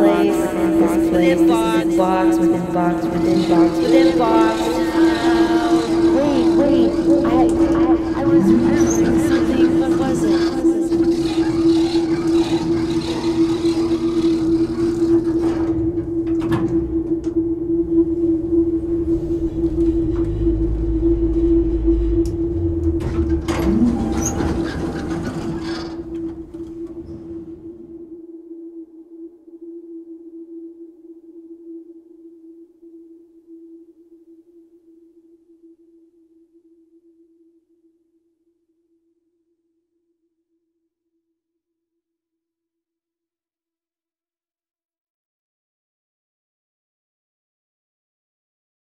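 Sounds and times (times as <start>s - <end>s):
steady electronic drone: 0.0s - 30.5s.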